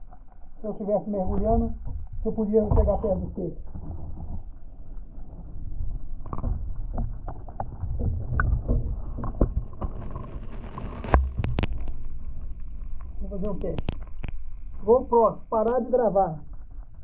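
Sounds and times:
muffled underwater rumbling sloshing: 0.0s - 15.7s, 16.3s - 17.0s.

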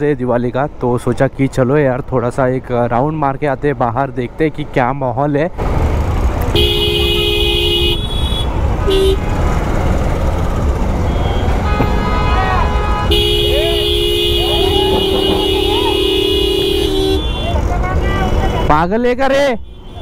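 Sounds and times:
low traffic rumble: 0.0s - 20.0s
vehicle horns honking: 6.5s - 9.5s, 11.0s - 18.8s, 19.6s - 20.0s.

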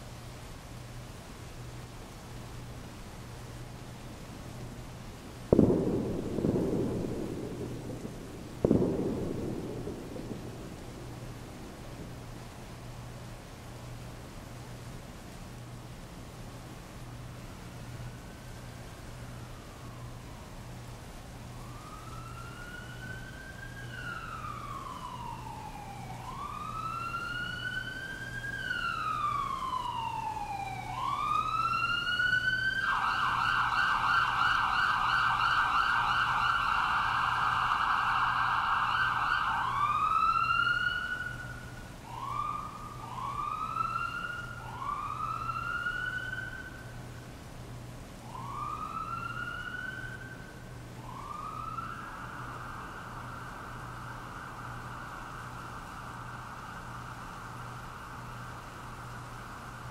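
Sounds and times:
rain hissing: 0.0s - 34.4s, 50.2s - 59.9s
emergency vehicle siren: 5.5s - 12.2s, 17.5s - 47.0s, 48.2s - 59.9s.

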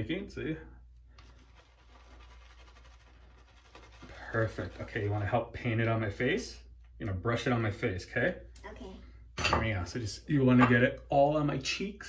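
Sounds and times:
shaving brush scratching in lather: 1.2s - 5.4s.

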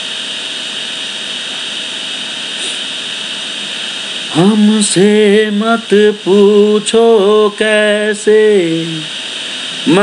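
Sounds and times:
thin high whine: 0.0s - 10.0s
person singing: 4.3s - 9.1s.

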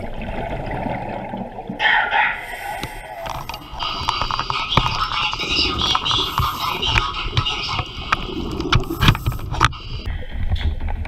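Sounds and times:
underwater bubbling rush: 0.0s - 11.0s.

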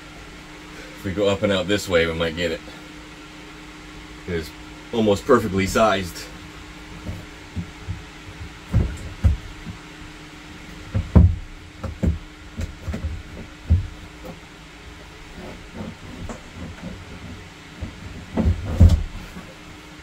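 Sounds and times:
plastic tank bumping and scraping: 7.0s - 9.8s, 10.7s - 14.4s, 15.2s - 19.6s.

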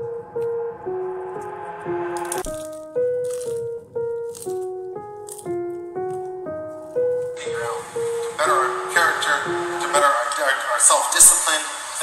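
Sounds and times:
melody of held notes: 0.0s - 11.3s.

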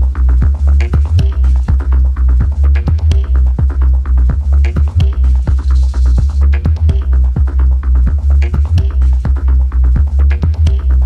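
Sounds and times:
deep bass line: 0.0s - 11.0s
kick drum beat: 0.0s - 11.0s.

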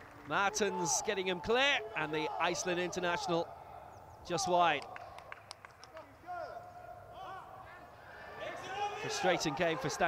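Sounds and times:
low background noise: 0.0s - 10.0s
footballers shouting: 0.3s - 5.2s, 6.1s - 10.0s.

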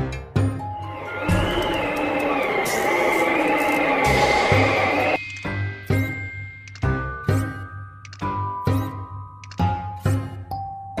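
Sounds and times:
faint sustained musical notes: 0.8s - 5.2s.

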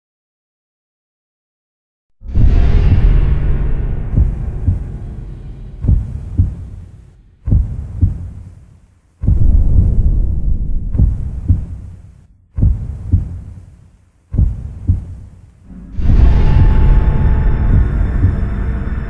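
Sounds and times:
booming heartbeat thuds: 2.3s - 8.6s, 9.2s - 19.0s.

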